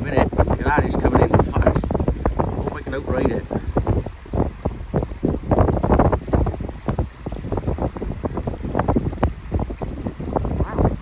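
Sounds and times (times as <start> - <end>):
small waves washing over sand: 0.0 - 11.0
wind buffeting microphone: 0.0 - 11.0.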